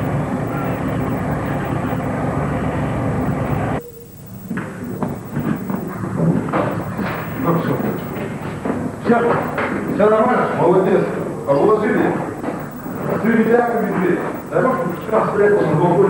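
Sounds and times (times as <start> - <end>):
faint voices: 3.4 - 16.0.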